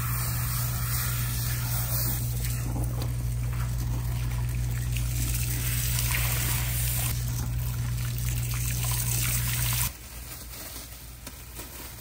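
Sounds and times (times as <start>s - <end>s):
steady low hum: 0.0s - 9.9s
water splashing into shampoo bowl: 2.2s - 9.9s.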